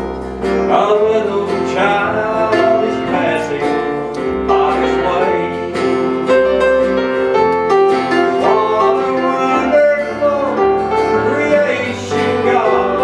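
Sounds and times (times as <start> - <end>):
strummed acoustic guitars: 0.0 - 13.0
man singing: 0.6 - 6.1, 8.1 - 13.0.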